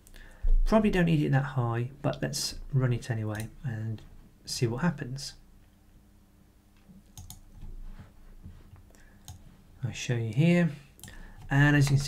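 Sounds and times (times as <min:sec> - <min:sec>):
computer mouse clicks: 0:03.3 - 0:03.5, 0:06.8 - 0:07.7, 0:08.7 - 0:09.4.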